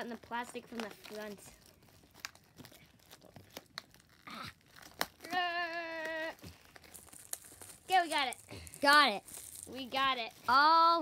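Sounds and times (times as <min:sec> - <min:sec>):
plastic shrink-wrap crinkling: 0:00.0 - 0:11.0.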